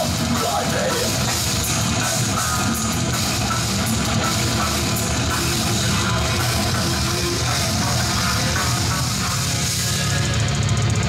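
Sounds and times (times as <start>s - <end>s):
drums: 0.0s - 11.0s
electric guitars: 0.0s - 11.0s.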